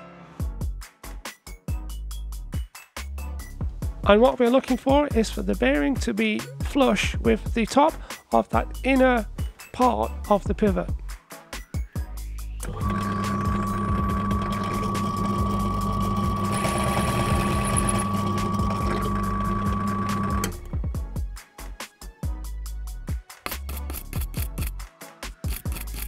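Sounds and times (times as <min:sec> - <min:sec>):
background music with a beat: 0:00.0 - 0:16.4, 0:18.0 - 0:26.0
drill press whining: 0:12.6 - 0:20.7.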